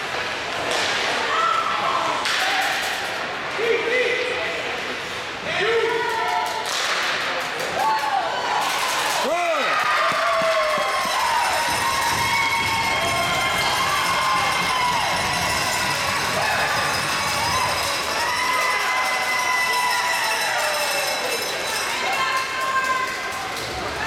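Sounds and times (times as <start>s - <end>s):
spectators cheering and shouting: 7.7s - 24.0s
long drawn-out yells: 9.3s - 21.1s.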